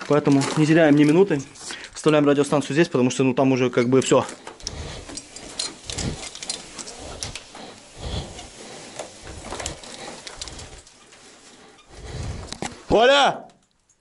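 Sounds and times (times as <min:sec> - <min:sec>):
clothing rustling: 0:00.0 - 0:02.9, 0:03.9 - 0:13.0
person breathing: 0:01.6 - 0:02.0, 0:04.3 - 0:12.9
metal gear clinking on rock: 0:03.8 - 0:07.4.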